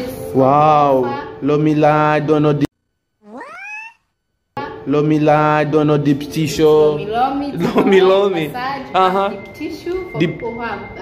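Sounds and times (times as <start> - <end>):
squeaky cartoon voice cry: 3.2 - 4.0.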